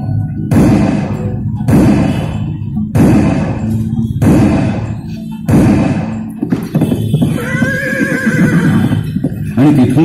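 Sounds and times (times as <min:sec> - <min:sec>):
horse hoofbeats: 0:05.5 - 0:10.0
horse whinny: 0:07.2 - 0:09.2.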